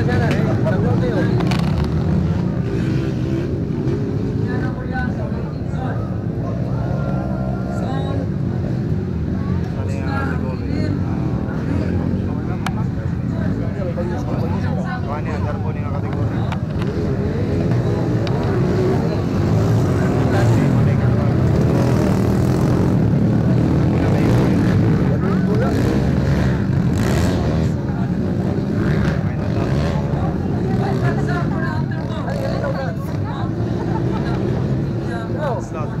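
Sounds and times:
motocross bike engines revving: 0.0s - 36.0s
voices: 0.0s - 36.0s.

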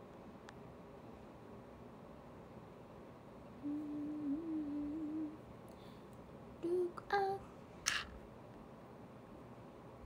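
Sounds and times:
woman humming: 3.6s - 5.4s, 6.6s - 7.4s.

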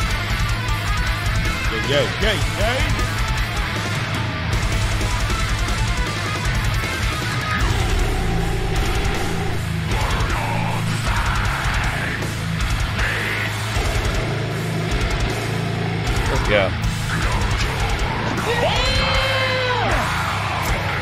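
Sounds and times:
distorted electric guitars: 0.0s - 21.0s
fast drumming: 0.0s - 21.0s
metalcore song: 0.0s - 21.0s
screamed vocals: 7.6s - 12.4s, 13.0s - 13.7s, 17.1s - 21.0s.

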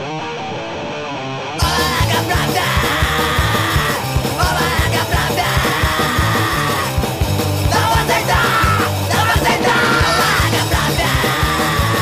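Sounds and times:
hardcore punk song: 0.0s - 12.0s.

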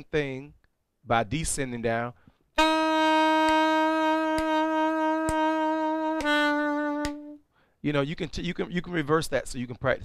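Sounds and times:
saxophone playing long notes: 2.6s - 7.4s.

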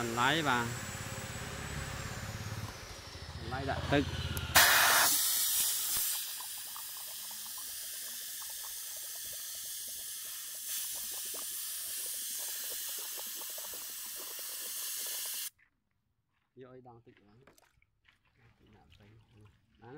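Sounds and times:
compressed air hissing through spray gun: 4.6s - 6.5s, 13.8s - 15.5s
water bubbling in cup: 5.7s - 15.5s.

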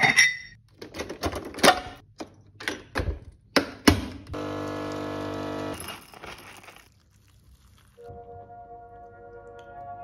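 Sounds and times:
coffee machine pump buzzing: 4.4s - 5.8s.

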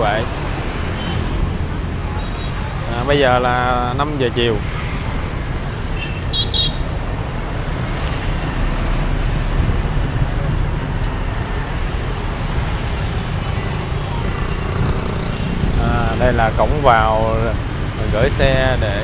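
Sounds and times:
city road traffic rumble: 0.0s - 19.0s
motorbikes passing: 0.0s - 19.0s.

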